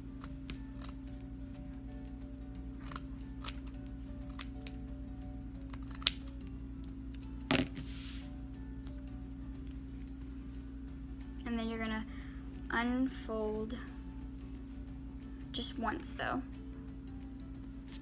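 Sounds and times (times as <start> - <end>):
scissors cutting fabric: 0.0 - 1.0, 2.7 - 4.8, 5.6 - 6.4
background music: 0.0 - 18.0.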